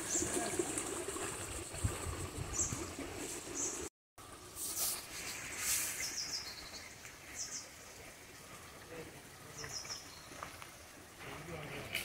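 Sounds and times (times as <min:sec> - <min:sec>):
faint outdoor hiss: 0:03.2 - 0:12.0.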